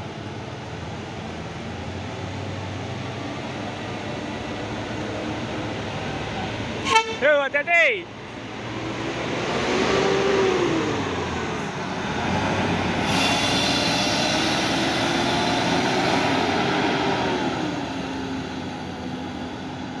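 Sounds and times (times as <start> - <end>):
bus diesel engine driving past: 0.0 - 20.0.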